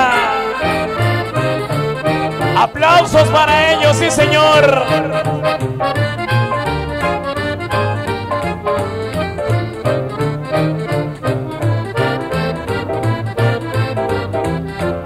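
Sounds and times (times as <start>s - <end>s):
accordion melody: 0.0s - 15.0s
repeating bass line: 0.0s - 15.0s.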